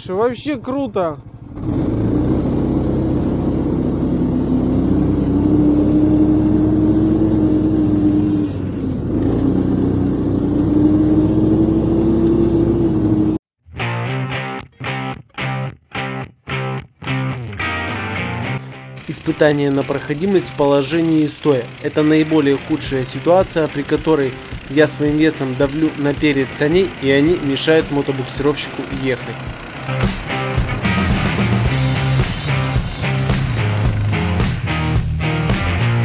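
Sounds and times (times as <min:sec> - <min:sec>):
small engine running under load: 0:01.2 - 0:13.4, 0:18.9 - 0:34.4
choppy rhythmic music: 0:29.4 - 0:36.0.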